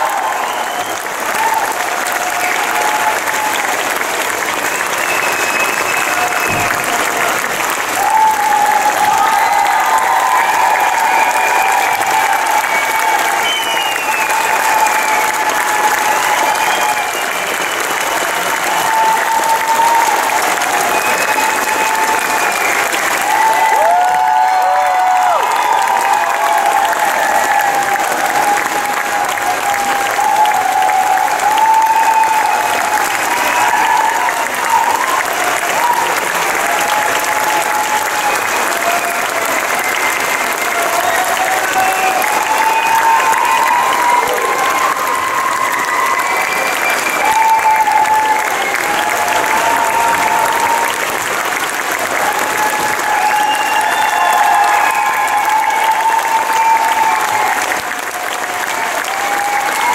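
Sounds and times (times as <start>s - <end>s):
audience applauding: 0.0s - 59.9s
crowd cheering: 0.0s - 59.9s.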